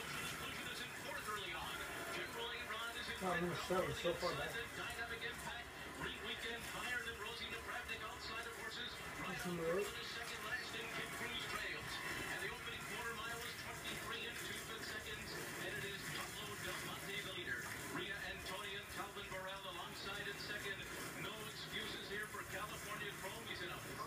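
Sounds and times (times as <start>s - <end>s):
race commentary through tv speaker: 0.0s - 24.0s.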